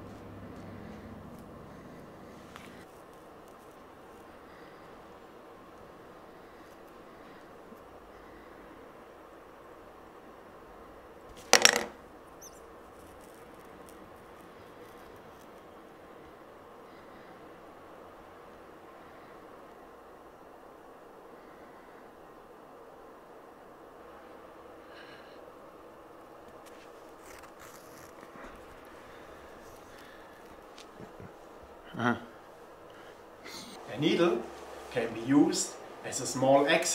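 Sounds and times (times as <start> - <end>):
fingers rustling with thread: 0.0 - 5.1, 11.3 - 16.2, 26.4 - 31.8
low room hum: 0.0 - 36.9.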